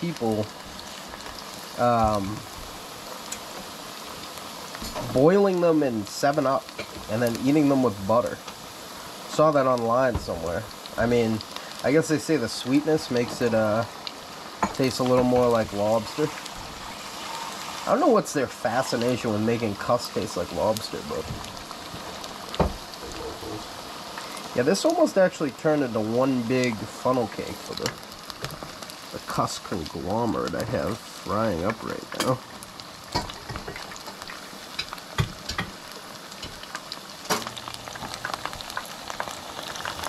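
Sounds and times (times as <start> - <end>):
food deep-frying in oil: 0.0 - 40.0.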